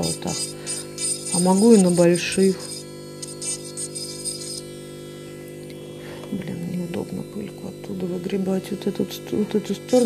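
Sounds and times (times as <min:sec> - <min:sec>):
electric nail drill motor hum: 0:00.0 - 0:10.0.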